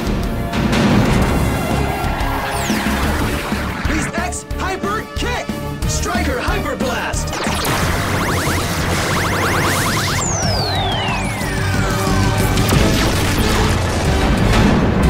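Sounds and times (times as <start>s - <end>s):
explosion crash and boom: 0.0s - 4.1s, 10.2s - 15.0s
action soundtrack music: 0.0s - 15.0s
long falling whistle: 7.5s - 12.4s.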